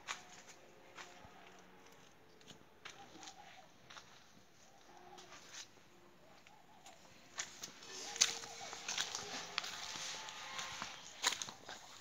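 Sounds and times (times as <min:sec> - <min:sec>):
flip-flop footsteps on pavement: 0:06.4 - 0:12.0.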